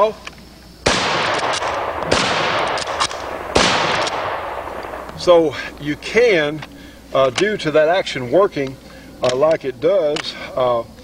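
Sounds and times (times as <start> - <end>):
rifle shots with echo: 0.8 - 6.7.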